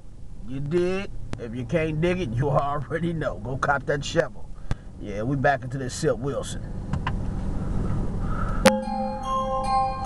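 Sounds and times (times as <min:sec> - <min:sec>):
car cabin rumble: 0:00.0 - 0:09.3
music with bell-like tones: 0:08.6 - 0:10.0.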